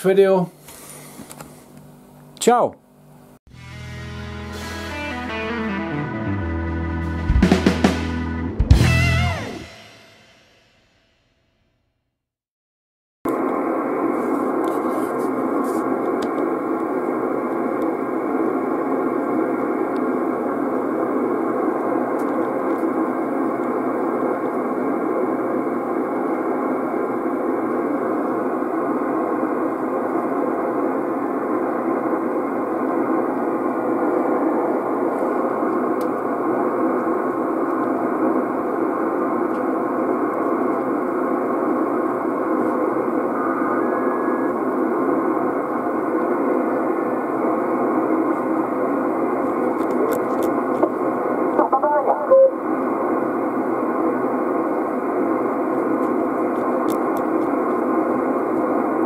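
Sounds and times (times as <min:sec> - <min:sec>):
radio static hiss: 0:38.4 - 0:59.0
faint radio whistle: 0:43.2 - 0:44.8.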